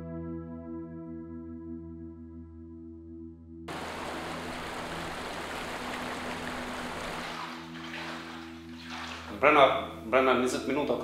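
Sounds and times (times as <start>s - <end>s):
water sloshing from wading: 3.7s - 9.4s.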